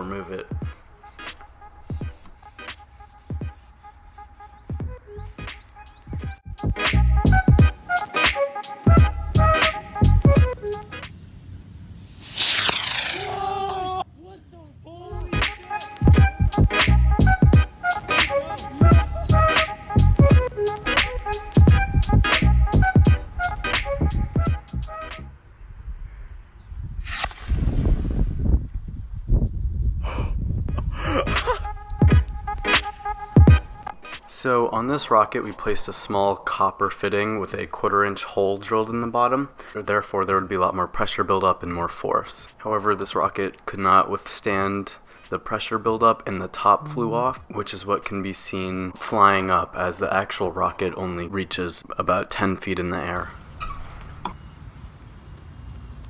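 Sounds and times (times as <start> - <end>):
background music: 0.0 - 11.1, 15.0 - 25.4, 31.2 - 34.6
rocket motor rushing: 12.1 - 13.6
wind rumble on microphone: 25.6 - 32.7.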